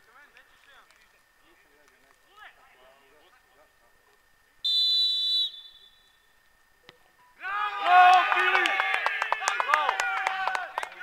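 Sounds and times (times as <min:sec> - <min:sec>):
referee's whistle: 0:04.6 - 0:06.3
players shouting: 0:07.4 - 0:11.0.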